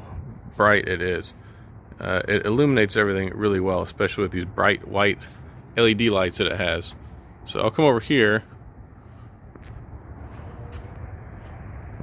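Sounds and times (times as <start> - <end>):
footsteps on driveway: 0.0 - 12.0
low outdoor rumble: 0.0 - 12.0.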